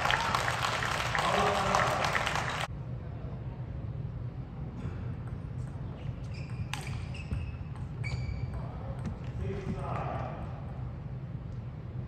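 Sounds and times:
steady hall hum: 0.0s - 12.0s
shoes squeaking on floor: 6.2s - 8.9s.

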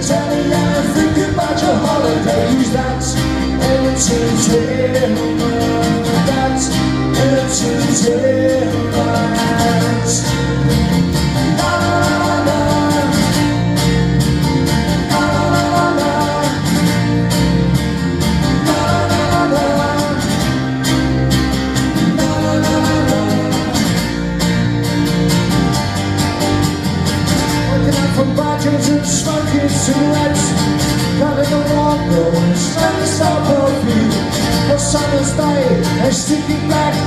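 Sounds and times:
acoustic band playing live: 0.0s - 37.0s.

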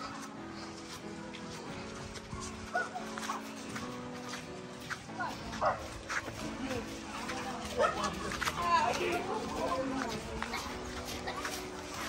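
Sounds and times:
soft background music: 0.0s - 12.0s
dog barking and yelping: 2.7s - 3.4s.

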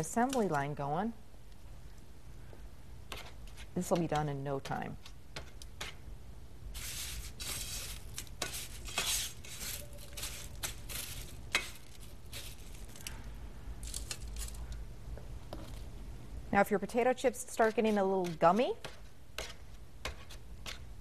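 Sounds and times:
potato chips crunching: 6.8s - 14.7s.

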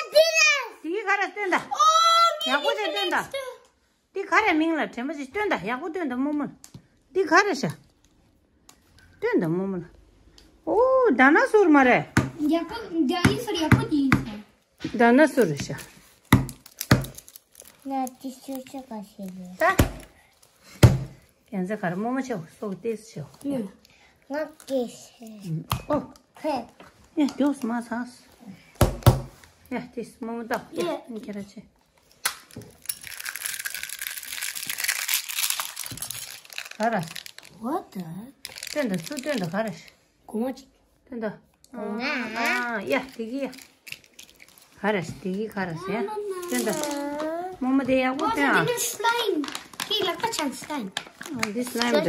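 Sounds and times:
plastic toy shell crackling: 16.2s - 19.7s, 32.2s - 37.7s, 38.4s - 40.0s, 42.5s - 44.7s, 46.4s - 47.3s, 48.2s - 52.0s.

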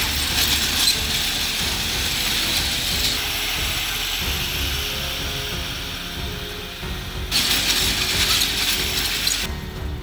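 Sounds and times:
roller slide rollers rattling: 0.0s - 3.8s, 7.3s - 9.5s.

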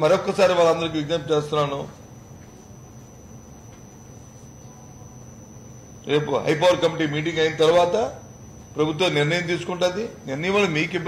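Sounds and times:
high-pitched whine: 0.0s - 11.0s
low electrical hum: 0.0s - 11.0s.

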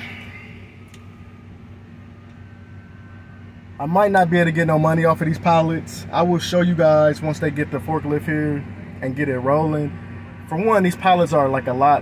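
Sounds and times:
idling truck hum: 0.0s - 12.0s.

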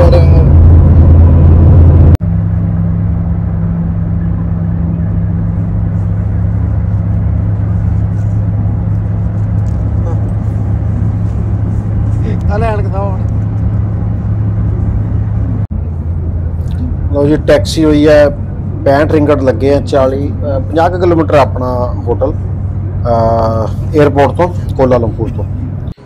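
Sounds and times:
car engine and road noise: 0.0s - 26.0s.

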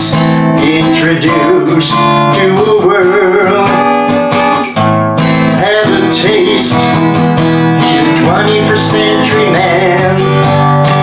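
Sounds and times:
acoustic guitar strummed chords: 0.0s - 11.0s.

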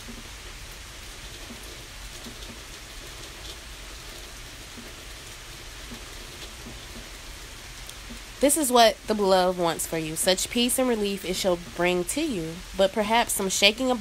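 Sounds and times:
faint ticks: 7.8s - 8.2s.

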